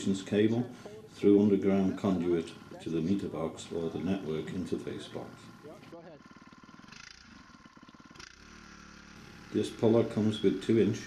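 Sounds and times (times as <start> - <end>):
electric motor humming: 0.0 - 11.0.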